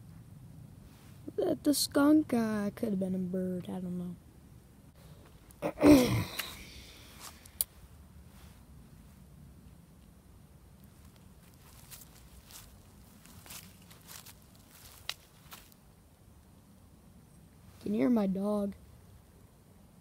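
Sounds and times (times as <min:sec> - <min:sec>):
faint low rumble: 0:00.0 - 0:20.0
soft rustle: 0:00.8 - 0:01.3, 0:06.6 - 0:15.9
faint footsteps walking slowly: 0:07.1 - 0:15.9.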